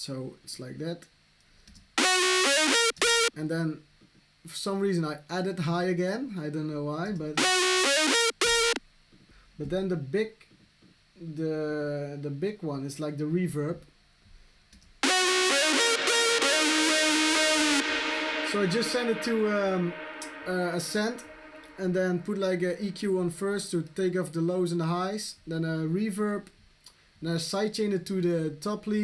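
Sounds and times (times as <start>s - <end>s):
distorted synthesizer lead: 2.0s - 3.3s, 7.4s - 8.8s, 15.0s - 23.0s.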